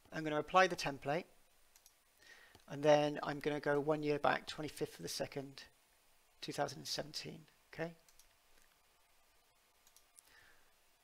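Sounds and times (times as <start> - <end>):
faint computer mouse clicks: 1.7 - 2.7, 9.8 - 10.3.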